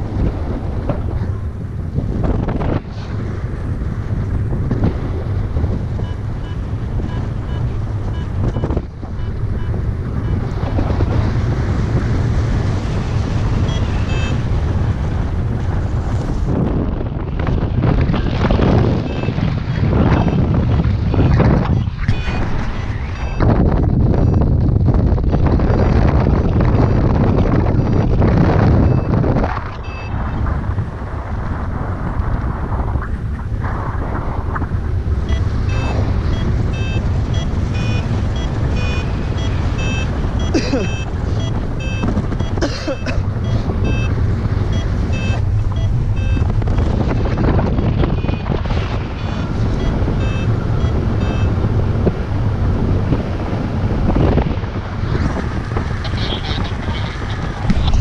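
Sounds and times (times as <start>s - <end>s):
wind buffeting microphone: 0.0s - 58.0s
variometer quick beeps: 6.0s - 10.5s, 13.2s - 14.9s, 19.0s - 19.4s, 21.1s - 23.5s, 24.2s - 24.5s, 26.2s - 29.2s, 29.8s - 30.4s, 35.2s - 46.7s, 48.0s - 48.6s, 49.2s - 51.6s.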